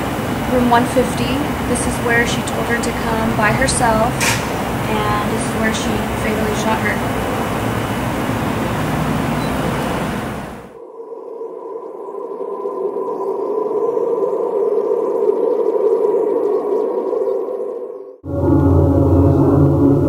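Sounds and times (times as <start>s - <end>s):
outdoor background noise: 0.0s - 13.9s
eerie ambient drone: 0.0s - 20.0s.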